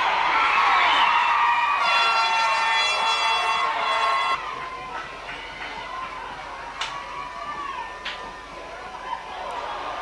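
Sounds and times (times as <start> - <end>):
crowd cheering: 0.0 - 10.0
horn blast: 1.8 - 4.4.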